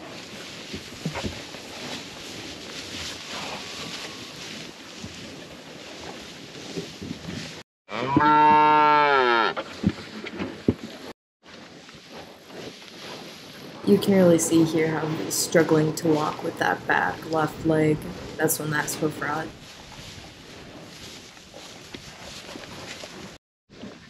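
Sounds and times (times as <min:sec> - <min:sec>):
cow mooing: 0:07.9 - 0:09.6.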